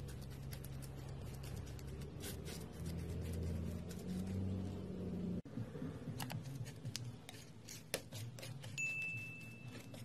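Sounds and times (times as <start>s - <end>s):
palette knife scraping paint: 0.0s - 4.5s, 6.2s - 10.0s.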